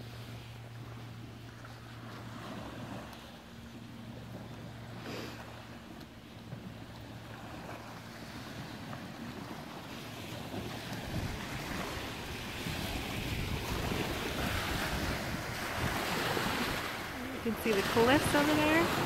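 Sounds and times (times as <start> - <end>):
small waves washing: 0.0 - 19.0
wind blowing on microphone: 10.6 - 19.0.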